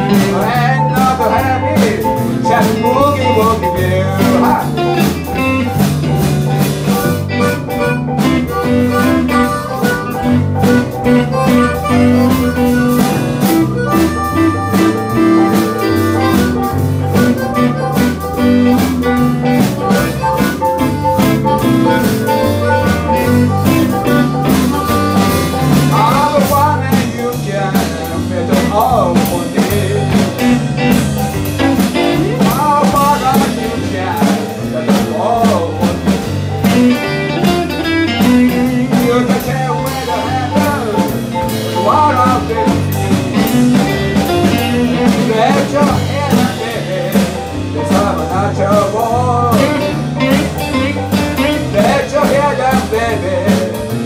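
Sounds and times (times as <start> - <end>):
harmonica playing: 0.0 - 53.7
live blues band: 0.0 - 54.0.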